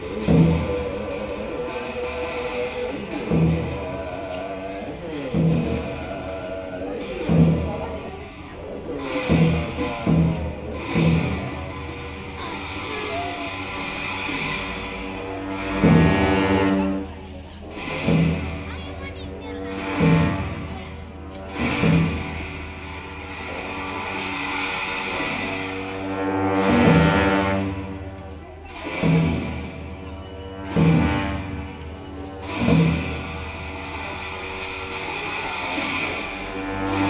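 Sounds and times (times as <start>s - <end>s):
drum and cymbal strikes: 0.0s - 37.0s
sustained low horn tones: 13.6s - 18.4s, 19.6s - 37.0s.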